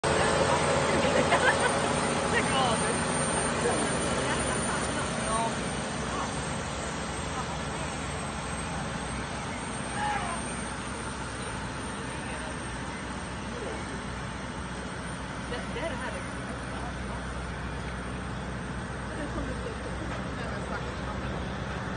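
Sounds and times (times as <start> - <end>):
people's voices: 0.0 - 21.9
truck engine and tyre rumble: 0.0 - 21.9.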